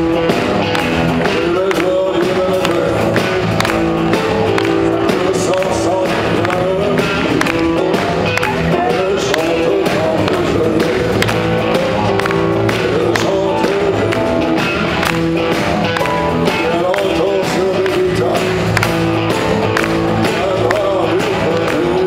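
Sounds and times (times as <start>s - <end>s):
drum kit steady beat: 0.0s - 22.0s
live rock band playing: 0.0s - 22.0s
wavering melodic lead line: 2.0s - 21.7s.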